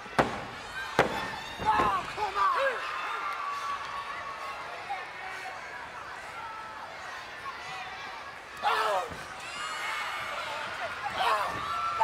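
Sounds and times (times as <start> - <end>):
crowd shouting: 6.2 - 12.0.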